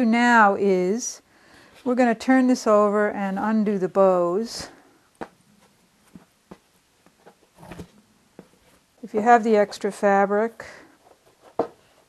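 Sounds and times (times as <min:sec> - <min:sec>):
soft taps and rustles: 0:05.2 - 0:08.9, 0:11.0 - 0:12.0.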